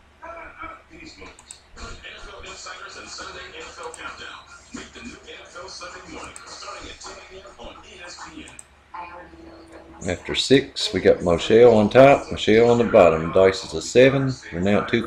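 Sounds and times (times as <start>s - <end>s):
indistinct voices talking: 0.6s - 15.0s
computer mouse clicks: 1.2s - 1.7s, 8.4s - 8.7s
person narrating: 3.2s - 15.0s.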